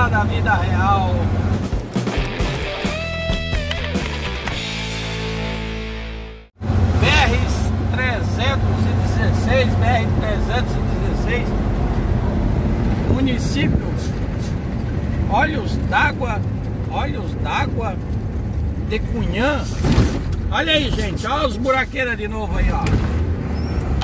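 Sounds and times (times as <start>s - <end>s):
diesel engine drone: 0.0s - 20.5s
road noise: 0.0s - 24.0s
intro music: 1.5s - 6.5s.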